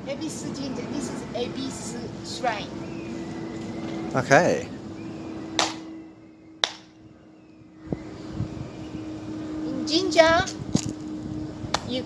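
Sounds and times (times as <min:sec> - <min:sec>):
sharp hand clap: 0:05.6 - 0:05.8, 0:06.6 - 0:06.9.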